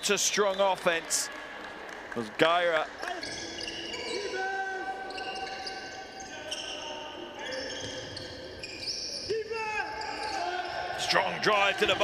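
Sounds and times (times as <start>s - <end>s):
voices around arena: 0.0s - 12.0s
court squeaks: 3.0s - 12.0s.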